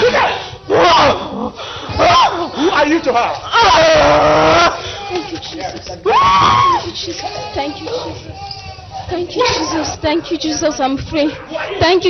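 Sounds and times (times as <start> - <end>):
woman crying out: 3.5 - 8.3.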